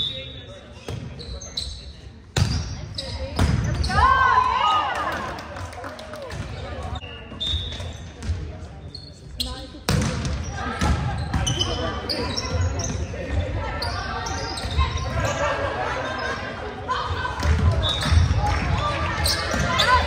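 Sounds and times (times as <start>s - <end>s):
sneakers squeaking on hardwood: 7.0s - 15.4s.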